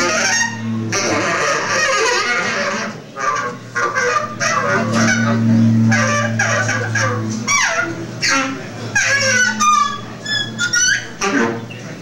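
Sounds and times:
saxophone honks and screeches: 0.0 - 11.8.

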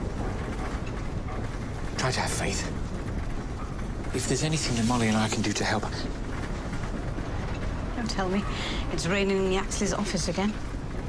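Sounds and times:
lift car rattling and rumbling: 0.0 - 11.0.

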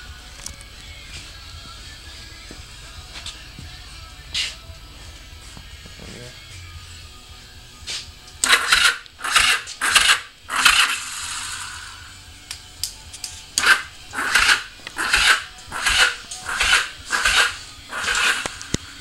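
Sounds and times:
motorcycle starter grinding rattle: 8.4 - 11.8, 13.6 - 18.8.

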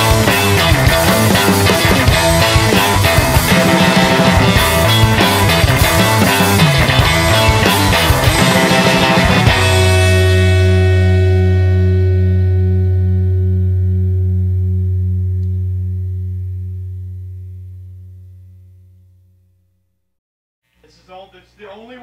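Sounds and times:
electric guitar and bass chord ringing: 0.0 - 19.4.

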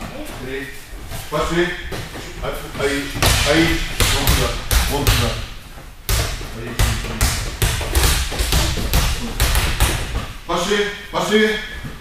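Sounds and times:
rubber balls thudding and slapping: 6.0 - 10.4.

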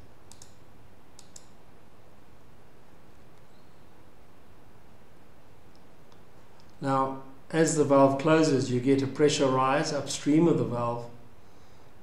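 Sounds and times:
faint steady hiss: 0.0 - 12.0
computer mouse clicking: 0.3 - 0.6, 1.2 - 1.6.

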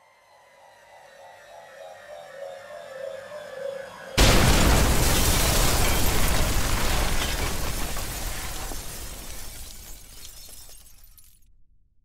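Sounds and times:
debris crumbling: 4.2 - 11.4
stone shattering: 4.2 - 11.4.

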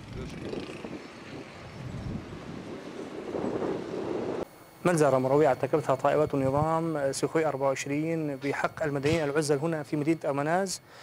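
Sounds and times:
wind on microphone: 0.0 - 4.4.

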